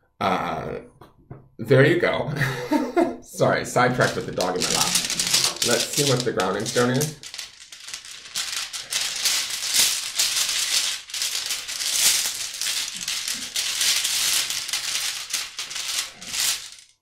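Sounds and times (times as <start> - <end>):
small stones rattling: 3.9 - 17.0.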